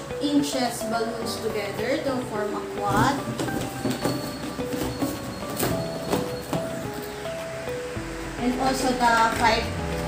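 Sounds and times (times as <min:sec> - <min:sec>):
slow melody of held notes: 0:00.0 - 0:10.0.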